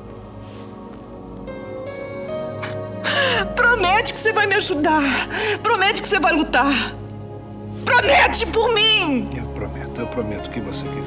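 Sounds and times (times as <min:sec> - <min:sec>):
soft sustained music: 0:00.0 - 0:11.0
woman sobbing: 0:02.6 - 0:03.8.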